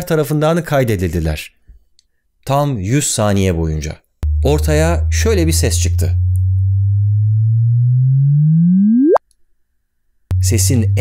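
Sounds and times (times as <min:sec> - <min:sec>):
low tone rising in pitch: 0:04.2 - 0:09.2, 0:10.3 - 0:11.0.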